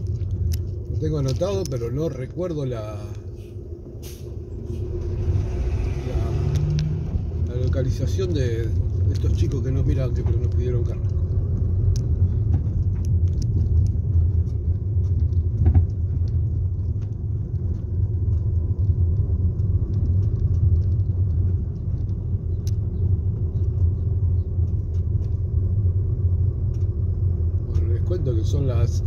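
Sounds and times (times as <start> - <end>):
car engine and tyre rumble: 0.0 - 29.0.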